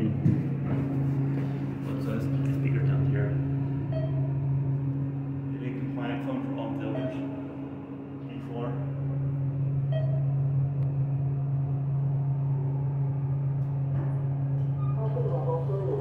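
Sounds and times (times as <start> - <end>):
elevator hum and rumble: 0.0 - 16.0.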